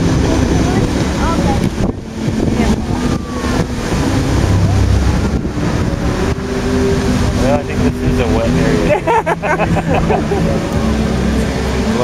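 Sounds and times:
crowd voices murmuring: 0.0 - 12.0
fountain water jets rushing: 0.0 - 12.0.

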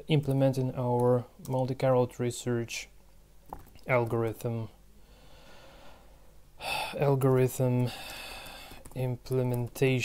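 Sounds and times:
faint room hiss: 0.0 - 10.0
man breathing in: 5.0 - 7.0, 7.9 - 8.8.

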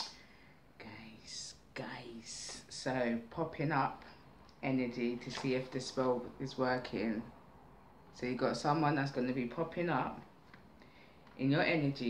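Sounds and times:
woman speaking softly: 0.8 - 3.2.

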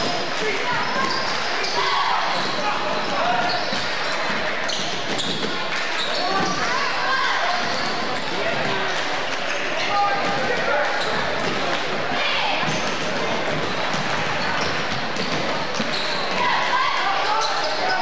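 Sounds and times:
crowd and player voices: 0.0 - 18.0.

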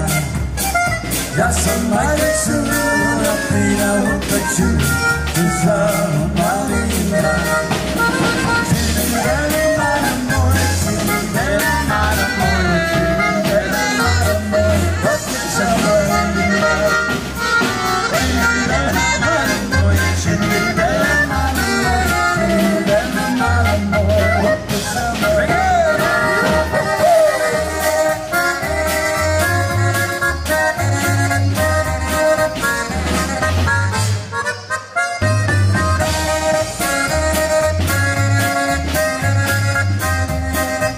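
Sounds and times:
drum kit beat: 0.0 - 40.9
free-reed melody: 0.0 - 40.9
pulsing bass: 0.0 - 40.9.

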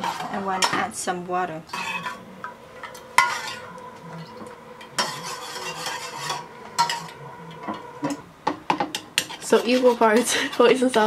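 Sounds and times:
metal spoon scraping saucepan: 0.0 - 11.0.

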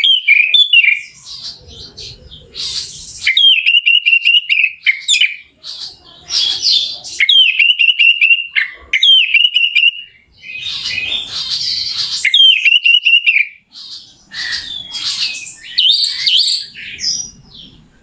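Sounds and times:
bird singing with trills: 0.0 - 18.0.

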